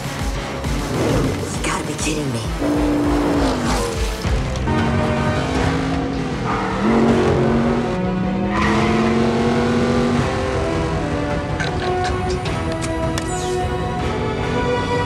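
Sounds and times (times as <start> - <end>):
car engines revving: 0.0 - 15.0
film music score: 0.0 - 15.0.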